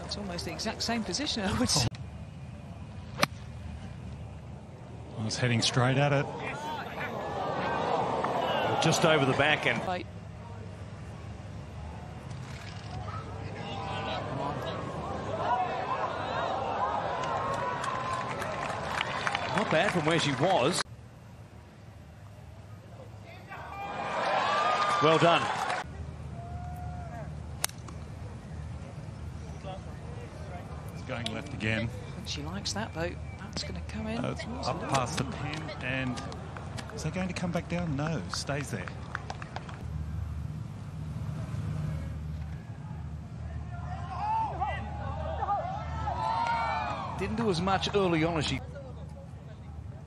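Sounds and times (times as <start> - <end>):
low outdoor background: 0.0 - 50.0.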